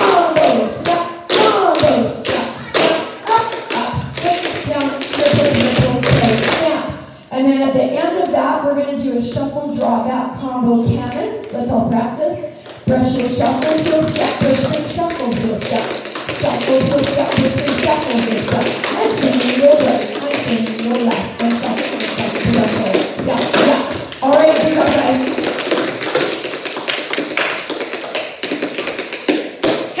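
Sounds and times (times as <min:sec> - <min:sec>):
woman speaking over microphone: 0:01.8 - 0:25.3
tap shoes striking floor: 0:03.6 - 0:06.5, 0:12.9 - 0:30.0.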